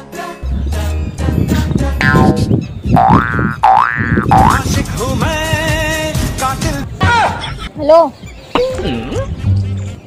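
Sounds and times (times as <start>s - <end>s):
background music: 0.0s - 7.6s.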